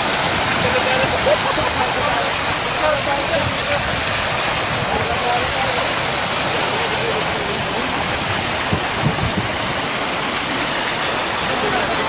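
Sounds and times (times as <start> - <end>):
faint voices: 0.0 - 12.0
rushing stream of water: 0.0 - 12.0.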